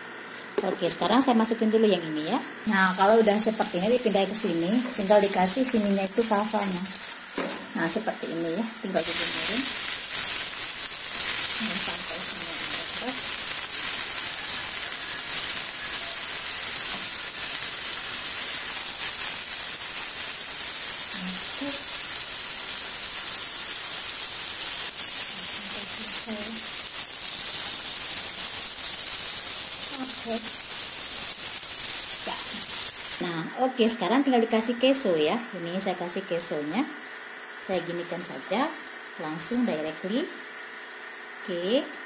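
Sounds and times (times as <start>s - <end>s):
food sizzling on a hot griddle: 2.7s - 42.0s.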